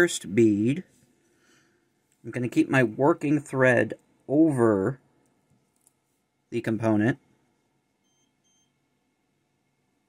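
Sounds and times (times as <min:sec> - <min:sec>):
faint high-pitched electronic beeps: 0:08.0 - 0:09.0.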